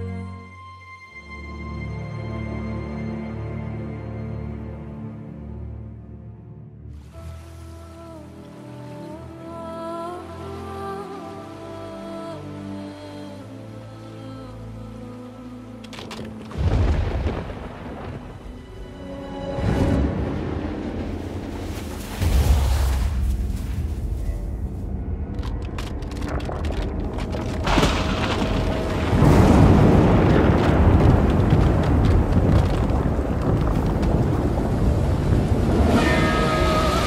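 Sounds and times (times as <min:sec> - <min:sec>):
dramatic film score: 0:00.0 - 0:37.0
deep booming rumbles: 0:26.2 - 0:36.0.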